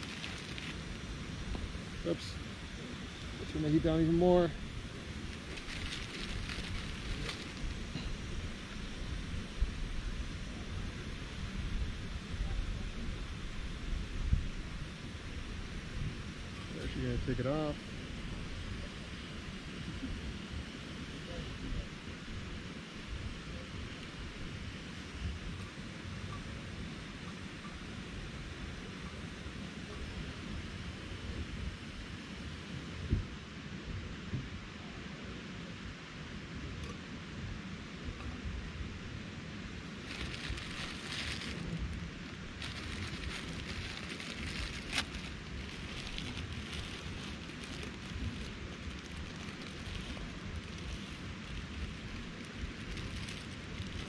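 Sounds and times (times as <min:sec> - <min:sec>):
plastic packet crinkling: 0:00.0 - 0:00.8, 0:05.3 - 0:07.8, 0:40.0 - 0:54.0
wind on microphone: 0:00.0 - 0:34.8.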